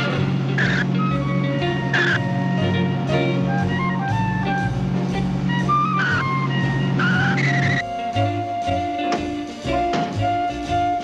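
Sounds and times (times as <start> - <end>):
jazzy background music: 0.0 - 11.0
cartoon tyre screech: 0.6 - 1.2, 1.9 - 2.3.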